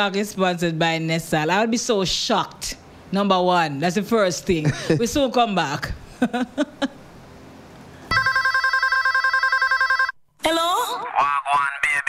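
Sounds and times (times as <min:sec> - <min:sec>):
electronic telephone ringing: 0:08.1 - 0:10.2.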